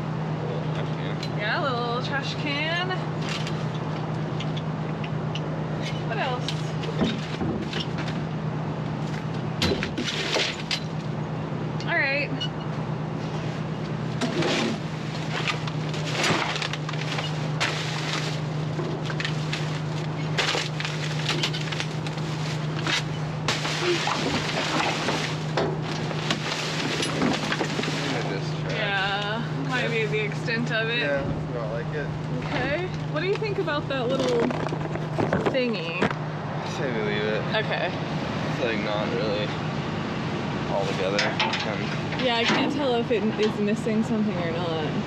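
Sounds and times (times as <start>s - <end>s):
low steady hum: 0.0s - 45.0s
knocks and clatter in dumpster: 6.8s - 8.3s, 9.6s - 11.0s, 22.7s - 28.4s
bags and cardboard rustling: 14.3s - 29.1s.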